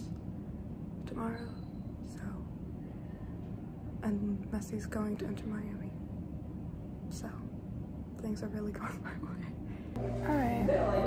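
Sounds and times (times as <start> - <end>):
low room noise: 0.0 - 11.0
woman speaking softly: 4.0 - 6.0, 8.2 - 9.6, 10.2 - 11.0.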